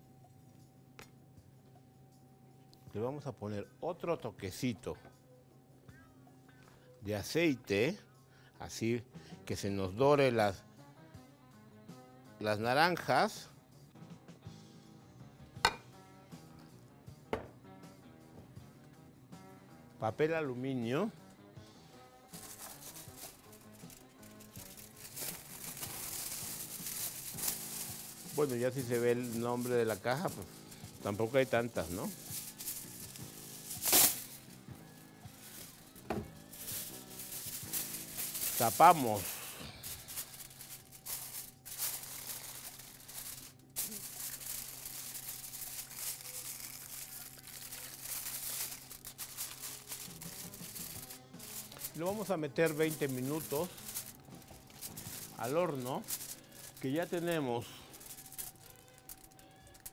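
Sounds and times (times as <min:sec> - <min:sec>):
quiet background music: 0:00.0 - 0:59.9
aluminium foil crinkling: 0:22.3 - 0:59.9.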